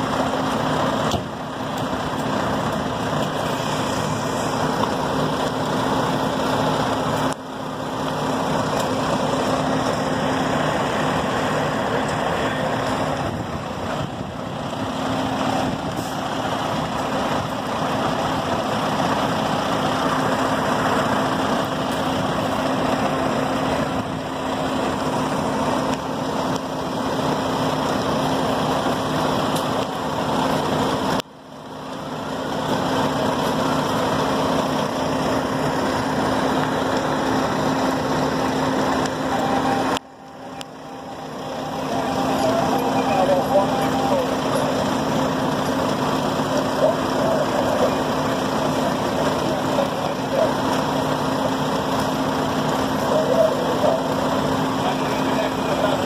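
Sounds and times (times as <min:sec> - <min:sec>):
diesel engine running: 0:00.0 - 0:56.0
noisy background: 0:00.0 - 0:56.0.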